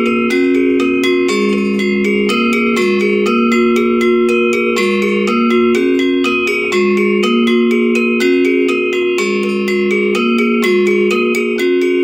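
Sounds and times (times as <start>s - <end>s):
metallophone struck with mallets: 0.0s - 12.0s.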